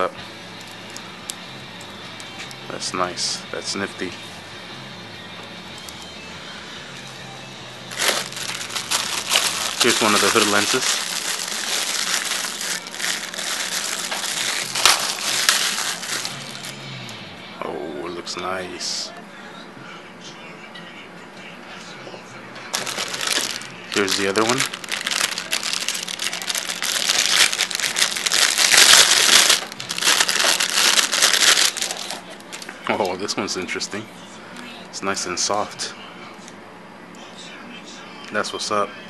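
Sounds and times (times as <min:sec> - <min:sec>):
plastic bag crinkling: 0:07.9 - 0:16.7, 0:22.7 - 0:32.7.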